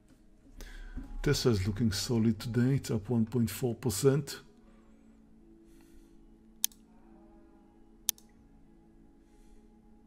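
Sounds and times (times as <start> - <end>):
faint steady hum: 0.0 - 10.0
computer mouse clicks: 6.6 - 6.8, 8.0 - 8.3.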